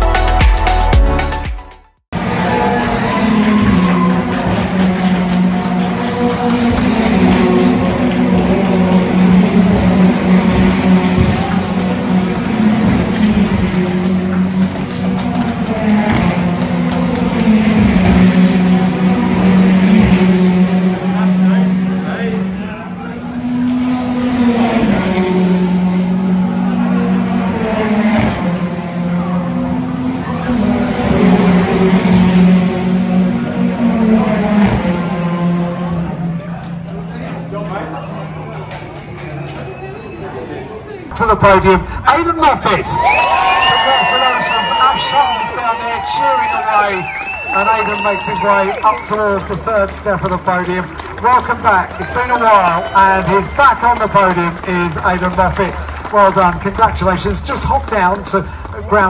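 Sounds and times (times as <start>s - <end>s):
race car engines revving: 2.1s - 59.0s.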